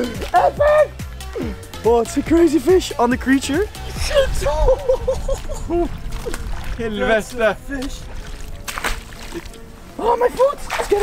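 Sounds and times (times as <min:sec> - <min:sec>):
wind rumble on microphone: 0:03.8 - 0:08.8
fish splashing in water: 0:05.2 - 0:06.8, 0:08.1 - 0:09.6.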